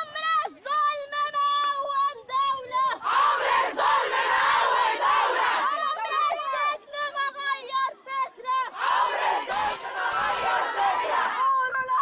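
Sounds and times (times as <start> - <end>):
woman leading protest chant: 0.0 - 3.5, 4.1 - 9.2, 10.3 - 12.0.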